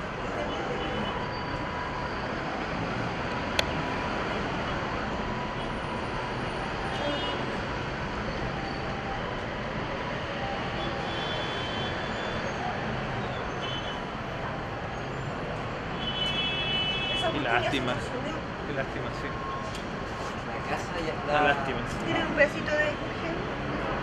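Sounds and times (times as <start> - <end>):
distant traffic roar: 0.0 - 24.0.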